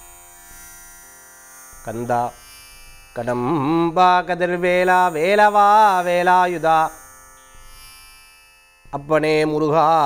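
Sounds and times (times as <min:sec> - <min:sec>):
man chanting: 0:01.9 - 0:02.4, 0:03.1 - 0:07.0, 0:08.9 - 0:10.0.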